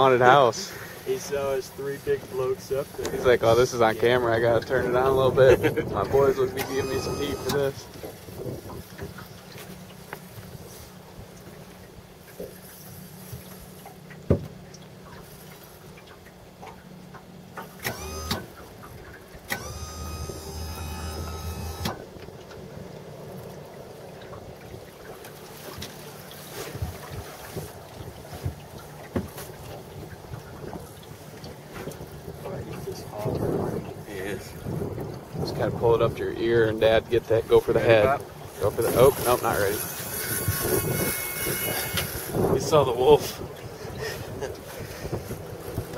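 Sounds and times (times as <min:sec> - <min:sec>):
wind rumble over water: 0:00.0 - 0:17.6, 0:22.0 - 0:45.9
short whine: 0:06.2 - 0:07.7, 0:19.5 - 0:22.0.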